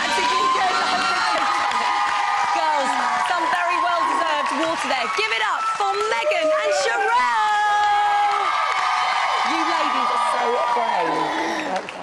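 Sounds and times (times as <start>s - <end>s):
studio audience cheering and whooping: 0.0s - 12.0s
long high shouts: 5.4s - 11.7s.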